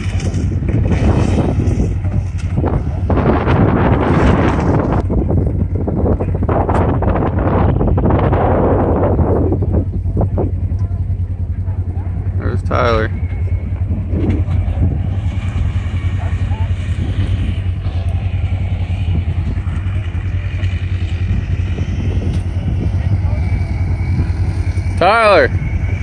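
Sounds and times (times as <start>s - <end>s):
off-road vehicle engines idling: 0.0s - 26.0s.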